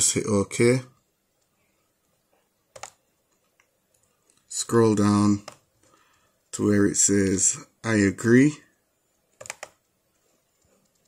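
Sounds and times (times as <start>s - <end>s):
computer mouse clicks: 2.7s - 4.5s, 5.4s - 6.0s, 9.3s - 11.0s.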